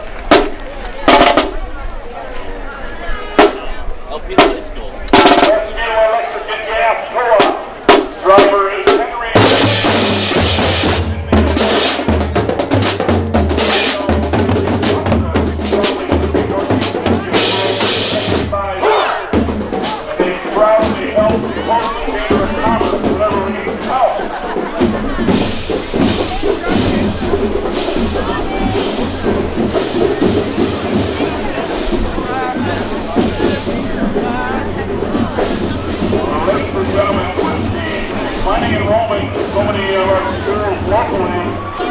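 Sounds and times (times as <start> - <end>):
drum line hits: 0.1 - 1.6, 3.4 - 41.9
bass drum and cymbals marching beat: 0.1 - 1.7, 3.2 - 41.9.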